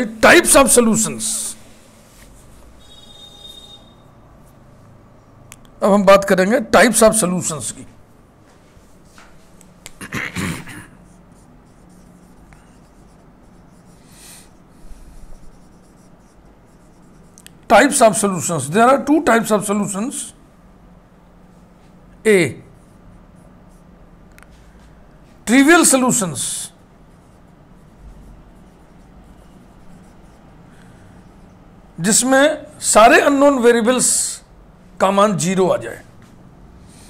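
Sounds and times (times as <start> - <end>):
marker scratching on whiteboard: 0.0 - 4.6, 10.9 - 19.6, 22.6 - 24.6, 25.3 - 32.3.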